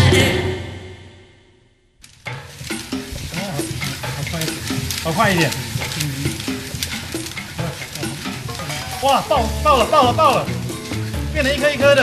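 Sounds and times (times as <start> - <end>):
rice grains crackling: 2.0 - 12.0
paddle scraping salt in wok: 2.3 - 12.0.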